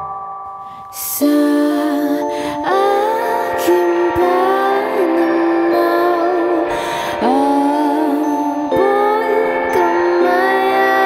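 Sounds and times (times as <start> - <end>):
experimental pop music: 0.0 - 11.0.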